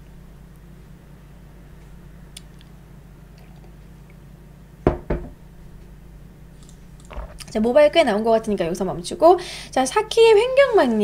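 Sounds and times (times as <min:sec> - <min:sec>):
mug knocking on hard surface: 0:04.9 - 0:05.4.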